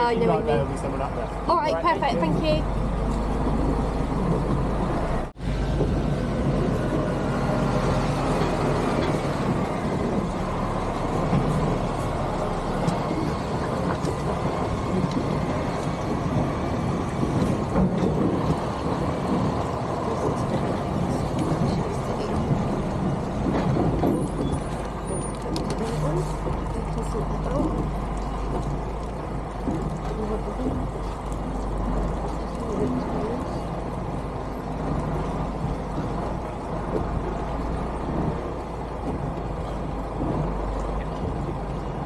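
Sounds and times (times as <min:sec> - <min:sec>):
diesel truck engine running: 0:00.0 - 0:42.0.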